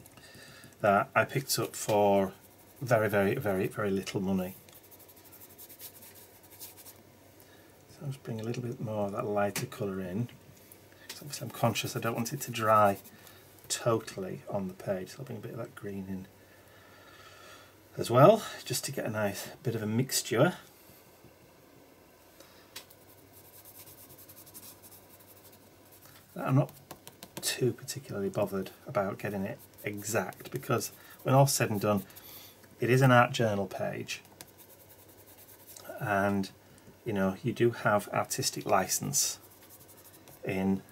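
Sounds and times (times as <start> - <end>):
sponge rubbing paint on paper: 1.6 - 3.8, 4.4 - 7.0, 11.9 - 13.2, 22.9 - 27.6, 29.0 - 32.3, 34.1 - 36.0, 38.2 - 40.6.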